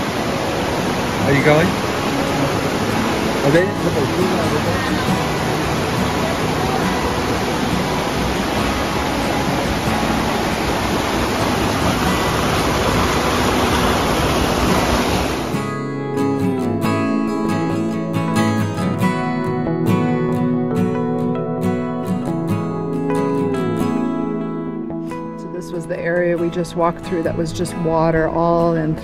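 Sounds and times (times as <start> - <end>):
stream rushing: 0.0 - 20.1
acoustic guitar music: 0.0 - 29.0.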